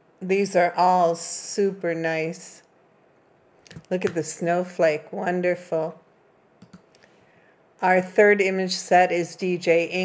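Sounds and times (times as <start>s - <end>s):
computer mouse clicks: 6.6s - 7.0s.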